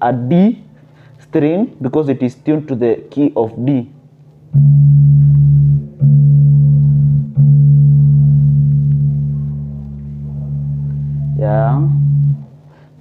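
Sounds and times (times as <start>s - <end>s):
electric bass string plucked: 4.4s - 12.9s.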